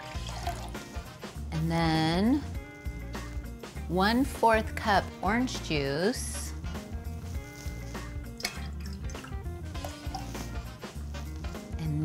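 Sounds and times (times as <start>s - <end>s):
juice pouring into metal shaker: 0.0s - 1.0s, 7.3s - 11.1s
background music: 0.0s - 12.0s.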